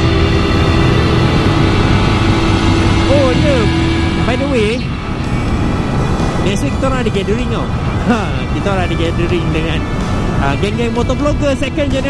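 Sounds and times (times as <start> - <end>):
motorcycle engine cruising: 0.0 - 12.0
wind rush on microphone: 0.0 - 12.0.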